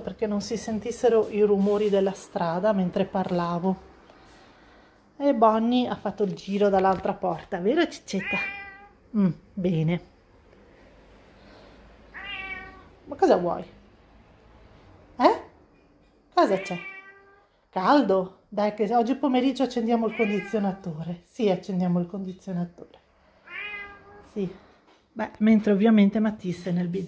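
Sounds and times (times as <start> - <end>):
cat meowing: 8.1 - 9.0, 12.1 - 13.0, 16.5 - 17.5, 20.0 - 21.0, 23.4 - 24.3.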